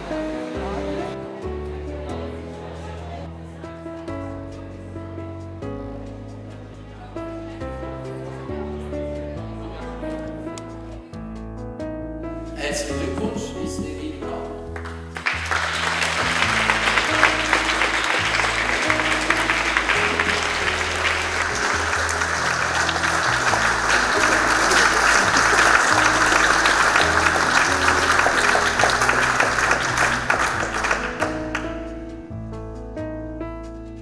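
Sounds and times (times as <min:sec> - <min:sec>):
background music: 0:00.0 - 0:34.0
audience applauding: 0:14.8 - 0:32.0.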